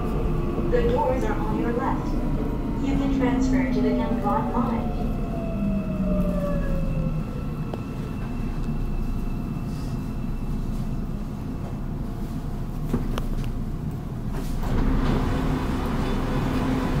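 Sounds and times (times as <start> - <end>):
subway train rumbling: 0.0 - 17.0.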